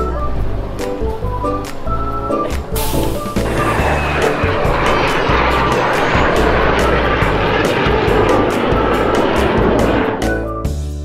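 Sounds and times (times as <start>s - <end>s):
background music: 0.0s - 11.0s
aircraft engine rushing past: 1.7s - 10.6s.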